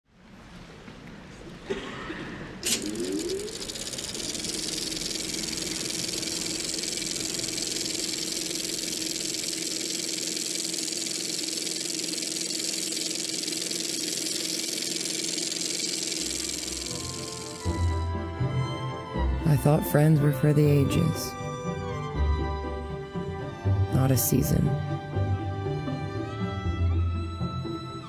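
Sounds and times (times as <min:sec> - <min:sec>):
machine click: 0:02.6 - 0:10.3
mechanical whir and rattle: 0:02.6 - 0:18.1.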